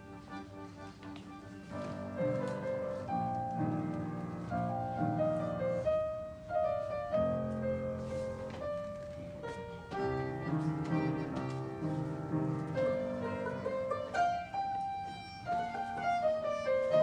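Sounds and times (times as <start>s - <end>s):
cellos: 0.0s - 17.0s
fiddles: 0.0s - 17.0s
piano: 0.0s - 17.0s.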